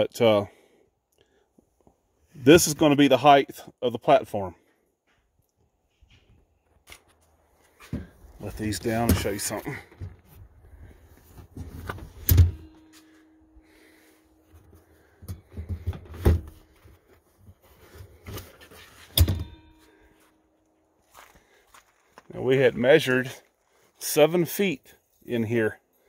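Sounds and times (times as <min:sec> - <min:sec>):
handling rustles and clunks: 0:04.6 - 0:22.3.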